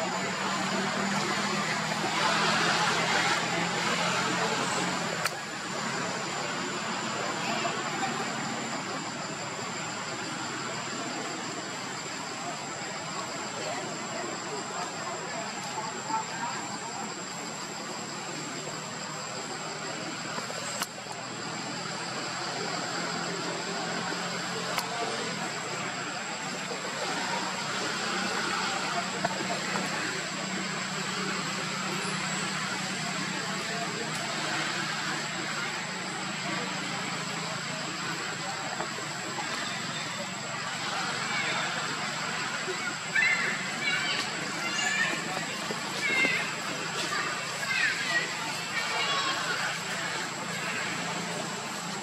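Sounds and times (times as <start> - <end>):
indistinct voices: 0.0 - 52.0.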